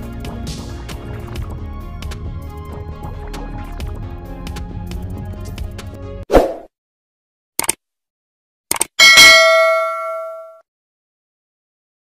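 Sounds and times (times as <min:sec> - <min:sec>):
bright bell ding: 0:09.0 - 0:10.6.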